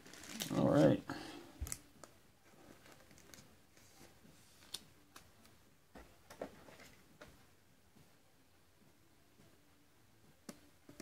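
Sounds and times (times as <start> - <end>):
card and plastic sleeve rustling: 0.0 - 1.0, 2.5 - 5.3.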